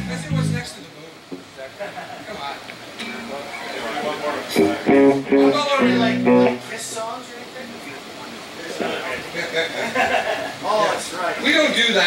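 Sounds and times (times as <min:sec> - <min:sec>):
amplified electric guitar notes: 0:00.0 - 0:00.7, 0:04.5 - 0:06.9.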